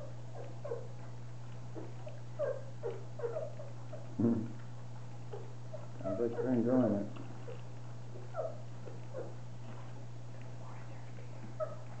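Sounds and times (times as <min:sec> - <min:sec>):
puppies squeaking and whimpering: 0:00.0 - 0:01.1, 0:01.7 - 0:04.2, 0:05.1 - 0:09.8, 0:11.6 - 0:12.0
steady low hum: 0:00.0 - 0:12.0.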